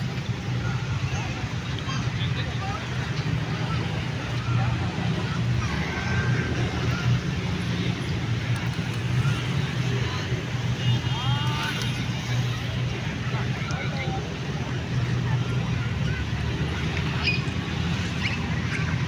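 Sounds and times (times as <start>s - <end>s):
babble of voices: 0.0s - 19.0s
road traffic rumble: 0.0s - 19.0s.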